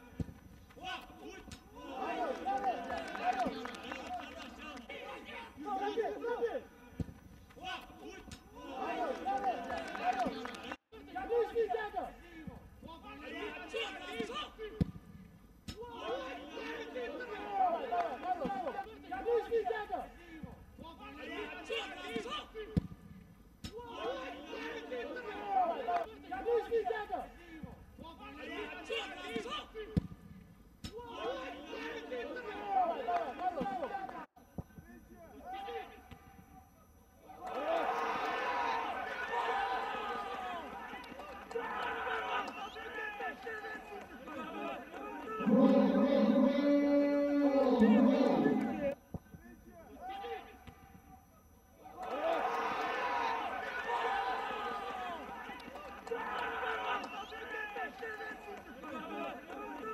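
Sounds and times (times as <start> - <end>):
faint stadium ambience: 0.0 - 59.9
men shouting and calling: 0.8 - 6.7, 7.6 - 14.7, 15.8 - 22.7, 23.8 - 29.9, 30.9 - 34.3, 37.3 - 49.0
person talking: 45.4 - 49.0.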